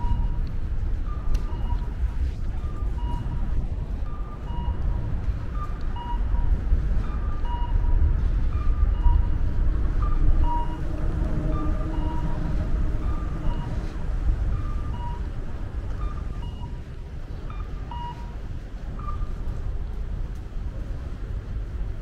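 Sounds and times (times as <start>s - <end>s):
road traffic rumble: 0.0s - 22.0s
two-note electronic crossing signal: 10.0s - 15.3s.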